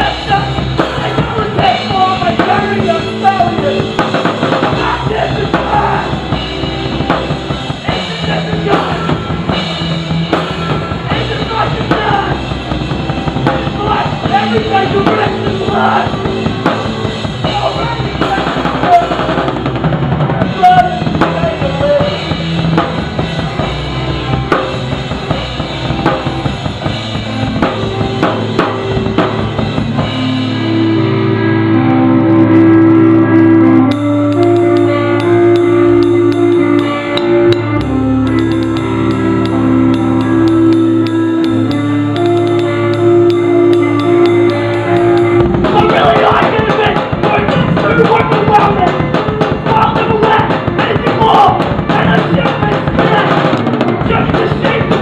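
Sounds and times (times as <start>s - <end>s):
drum kit: 0.0s - 31.3s, 32.4s - 55.0s
guitar chords: 0.0s - 55.0s
cymbals: 33.9s - 49.6s.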